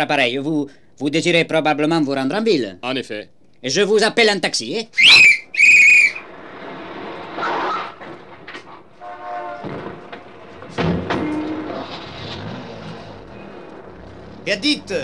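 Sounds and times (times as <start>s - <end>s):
car horn honk: 9.0s - 9.8s
car engine: 10.2s - 15.0s.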